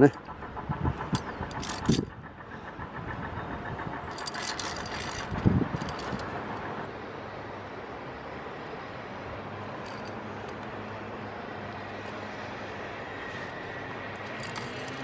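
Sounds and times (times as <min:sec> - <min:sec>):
scattered clicks and knocks: 0:00.0 - 0:06.9, 0:13.9 - 0:15.0.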